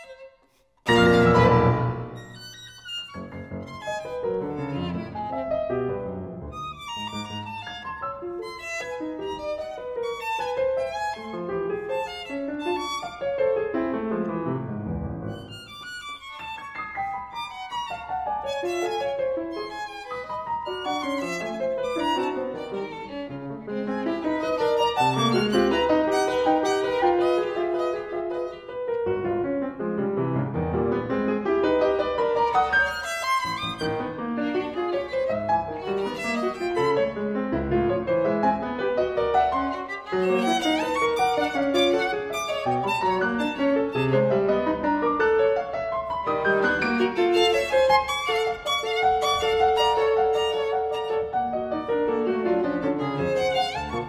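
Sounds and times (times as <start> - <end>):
grand piano: 0.0 - 54.0
violin: 0.0 - 54.0.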